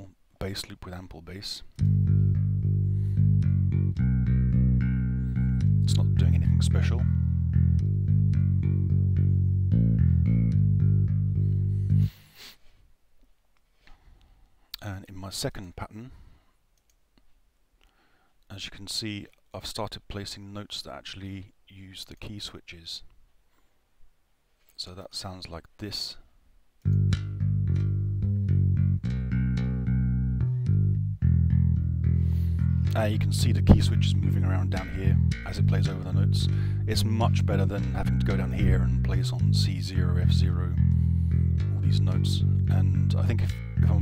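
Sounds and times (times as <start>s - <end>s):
plucked electric bass line: 1.7s - 12.2s, 26.8s - 44.0s.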